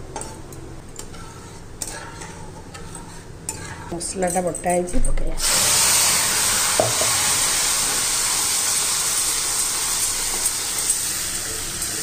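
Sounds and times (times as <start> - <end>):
oil sizzling: 5.4 - 12.0.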